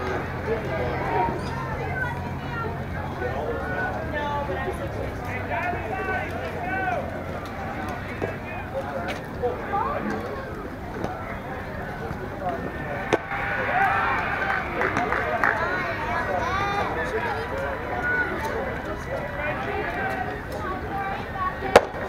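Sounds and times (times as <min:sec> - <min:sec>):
people calling out and chattering: 0:00.0 - 0:22.0
people shouting: 0:05.3 - 0:08.6, 0:12.6 - 0:22.0.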